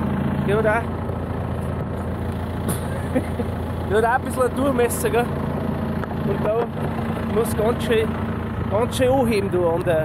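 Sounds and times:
tractor diesel engine idling: 0:00.0 - 0:10.0.

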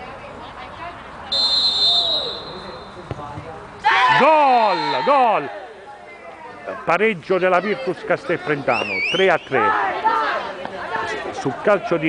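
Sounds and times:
referee's whistle: 0:01.3 - 0:03.0, 0:04.4 - 0:05.4, 0:08.8 - 0:09.6
ball being kicked: 0:03.0 - 0:03.6.

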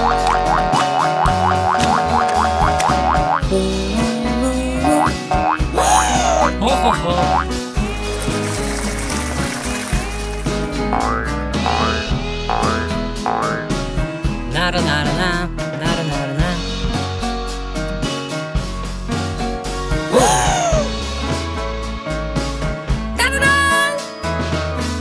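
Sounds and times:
quick run of repeated notes: 0:00.0 - 0:03.6, 0:04.9 - 0:13.9
upbeat cartoon background music: 0:00.0 - 0:25.0.

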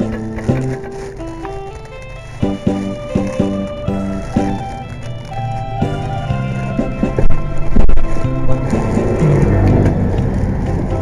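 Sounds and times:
backing track: 0:00.0 - 0:11.0
saxophone slow melody: 0:00.0 - 0:11.0.

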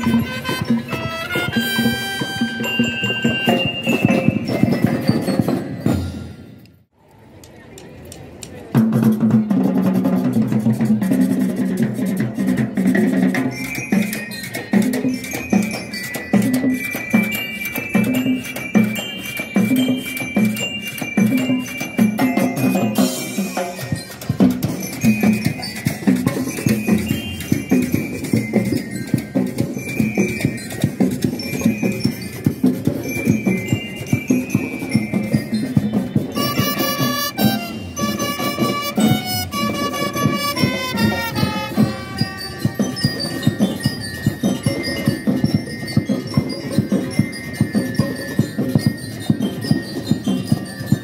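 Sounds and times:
high ringing bell-like notes: 0:00.0 - 0:06.6, 0:13.3 - 0:51.0
marching band drums: 0:00.0 - 0:06.6, 0:08.8 - 0:51.0
faint crowd voices: 0:00.0 - 0:51.0.

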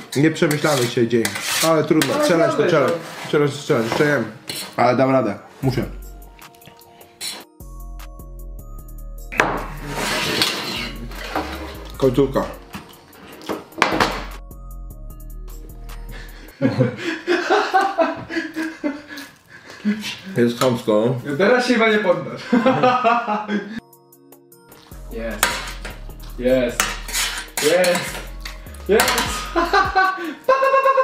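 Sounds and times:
fork scraping metal tray: 0:00.0 - 0:04.8, 0:09.8 - 0:12.0, 0:25.3 - 0:29.6
background music with held notes: 0:00.0 - 0:31.0.

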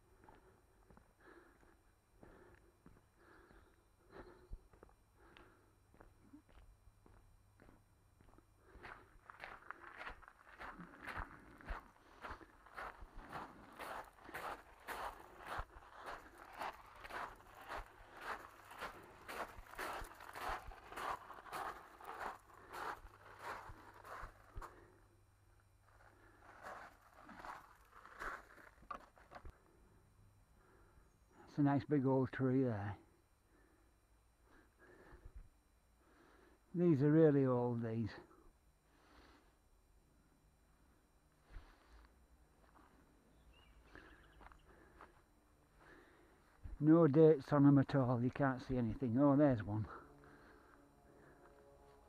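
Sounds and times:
footsteps on gravel: 0:05.9 - 0:25.0, 0:25.8 - 0:29.5.

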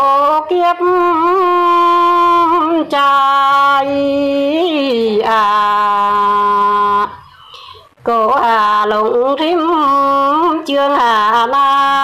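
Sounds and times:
woman singing long note: 0:00.0 - 0:07.2.

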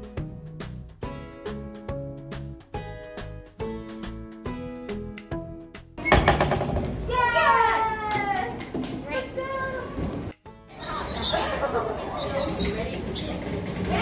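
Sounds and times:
children's excited voices: 0:10.7 - 0:14.0
children squealing: 0:10.8 - 0:12.9.

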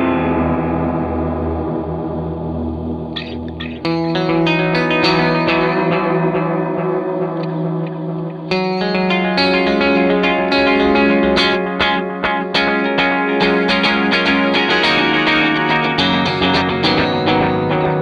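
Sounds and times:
electric guitar chords with echoes: 0:00.0 - 0:18.0.

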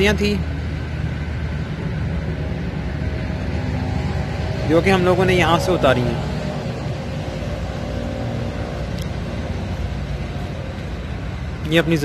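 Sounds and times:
engine running: 0:00.0 - 0:12.0.

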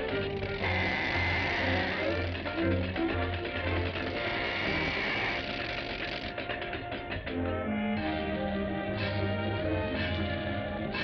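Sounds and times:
cartoon soundtrack music: 0:00.0 - 0:11.0.

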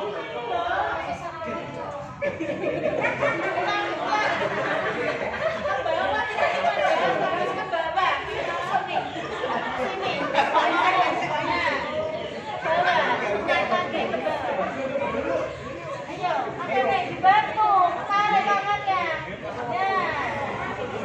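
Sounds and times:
overlapping chatter of people: 0:00.0 - 0:21.0.

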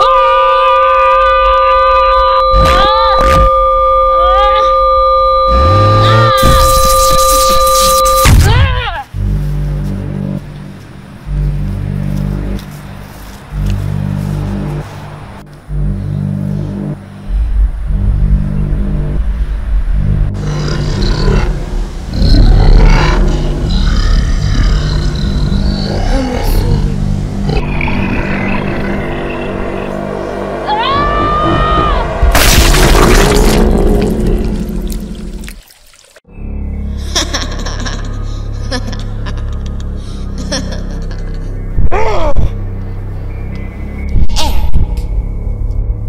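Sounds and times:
deep bass notes: 0:01.4 - 0:35.6, 0:36.2 - 0:46.0
sweeping tones: 0:02.0 - 0:08.3, 0:09.2 - 0:32.7.

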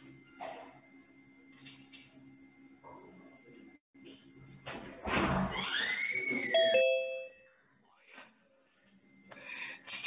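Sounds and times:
two-note electronic chime: 0:06.6 - 0:07.5.

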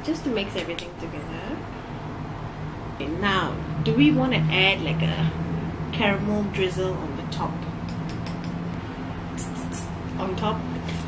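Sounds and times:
sharp clicks: 0:07.9 - 0:08.6.

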